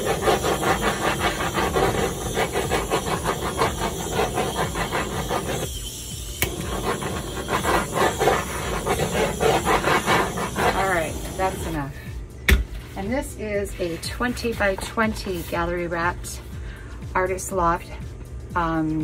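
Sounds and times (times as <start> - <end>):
torch flame hissing: 0.0 - 12.1.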